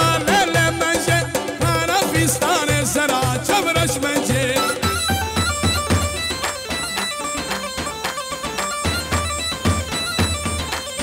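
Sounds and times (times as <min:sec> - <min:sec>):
fast lead melody: 0:00.0 - 0:11.0
steady drum beat: 0:00.0 - 0:11.0.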